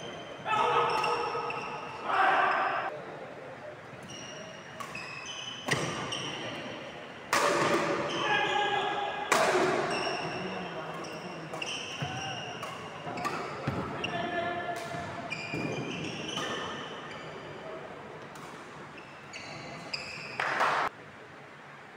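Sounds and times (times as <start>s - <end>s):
shoes squeaking on court floor: 0.0s - 2.8s, 3.9s - 9.0s, 9.7s - 20.6s
rackets hitting shuttlecock: 4.7s - 6.6s, 7.3s - 8.2s, 9.3s - 14.0s, 14.7s - 17.2s.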